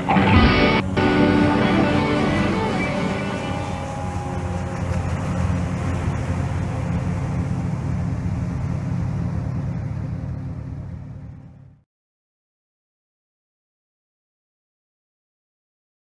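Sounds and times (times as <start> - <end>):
boat engine and water rush: 0.0 - 11.8.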